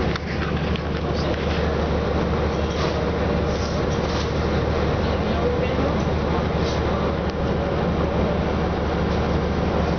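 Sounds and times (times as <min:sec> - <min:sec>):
bus diesel engine drone: 0:00.0 - 0:09.9.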